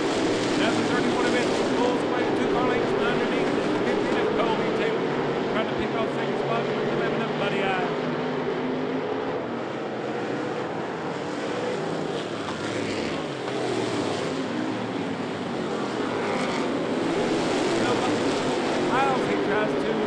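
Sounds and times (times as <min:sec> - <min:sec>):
race car engines racing past: 0:00.0 - 0:20.0.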